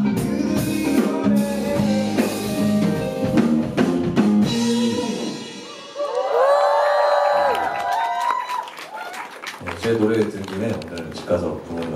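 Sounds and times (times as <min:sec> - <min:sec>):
live band chord: 0:00.0 - 0:05.8
audience cheering: 0:05.6 - 0:11.9
audience clapping: 0:06.1 - 0:11.9.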